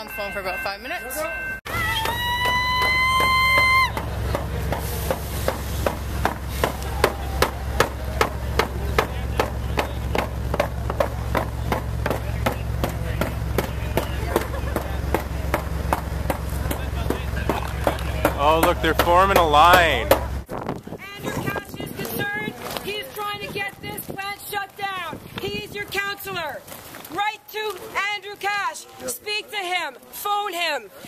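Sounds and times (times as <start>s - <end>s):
diesel locomotive idling: 0.1s - 20.5s
sharp knocks: 3.9s - 20.4s.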